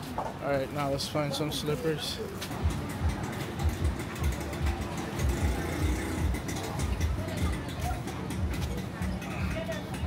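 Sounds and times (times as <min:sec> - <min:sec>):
busy market ambience: 0:00.0 - 0:10.0.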